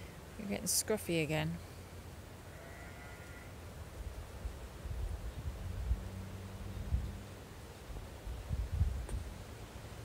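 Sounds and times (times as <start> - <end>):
faint sheep bleat: 2.5 - 3.6.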